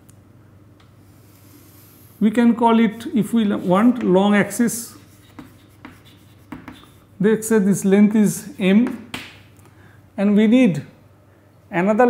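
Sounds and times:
chalk scratching on chalkboard: 0:02.9 - 0:07.2, 0:08.2 - 0:09.2
chalk tapping on board: 0:03.6 - 0:07.1, 0:08.6 - 0:09.4.

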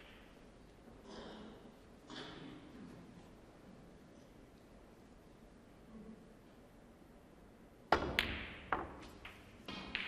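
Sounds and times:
snooker balls knocking: 0:00.0 - 0:00.5, 0:07.9 - 0:10.0.

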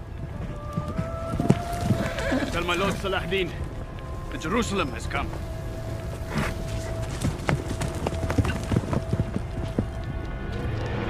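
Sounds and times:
horse hooves clopping on hard ground: 0:00.0 - 0:10.9
low music drone: 0:00.0 - 0:11.0.

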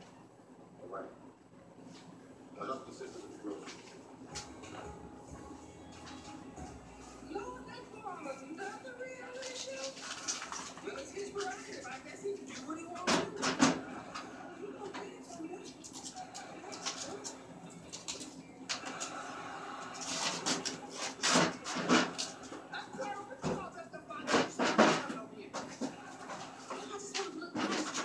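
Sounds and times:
plastic packing rustling: 0:08.6 - 0:13.6
fridge shelves clattering: 0:09.3 - 0:14.3, 0:20.0 - 0:28.0.

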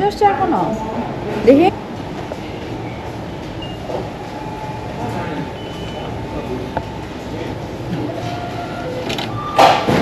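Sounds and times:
restaurant room hum: 0:00.0 - 0:10.0
faint high beeps: 0:02.5 - 0:07.1.

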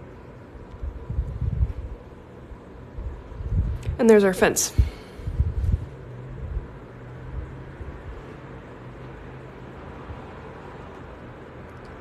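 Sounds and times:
background hum: 0:00.0 - 0:12.0.

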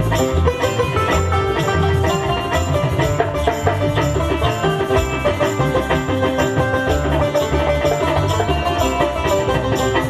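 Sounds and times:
barrel hand drum rhythm: 0:00.0 - 0:10.0
melodic instrumental line: 0:00.0 - 0:10.0.

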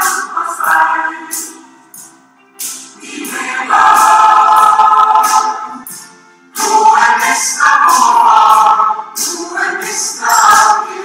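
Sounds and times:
choir singing held chord: 0:00.0 - 0:01.7, 0:03.0 - 0:05.9, 0:06.5 - 0:11.0
small band playing: 0:00.0 - 0:11.0.

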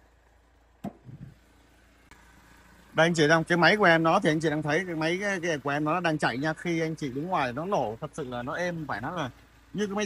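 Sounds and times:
hood lifting: 0:00.0 - 0:10.0.

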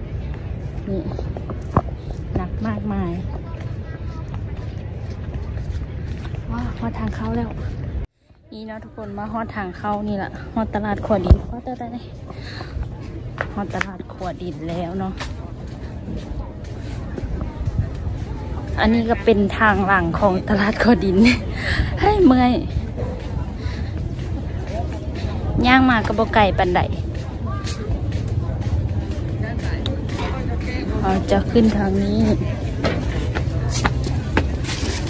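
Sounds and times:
faint distant voices: 0:00.0 - 0:35.0
woman speaking: 0:02.3 - 0:03.6, 0:06.5 - 0:07.8, 0:08.5 - 0:12.2, 0:13.5 - 0:15.2, 0:18.7 - 0:22.9, 0:25.4 - 0:27.8, 0:29.5 - 0:32.7
steady low rumble: 0:09.2 - 0:35.0.

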